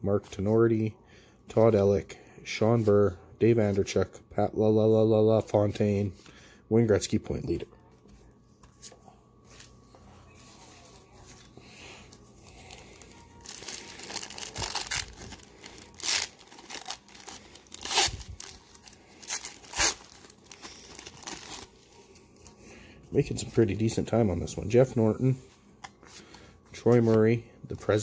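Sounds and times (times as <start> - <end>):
wrapper crinkling and ripping: 12.6 - 22.0.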